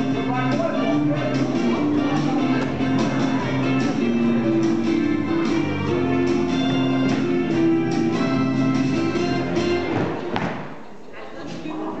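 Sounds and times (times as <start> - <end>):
faint talking: 0.0 - 3.8
country-pop music: 0.0 - 10.8
thump echoing in large hall: 9.8 - 10.9.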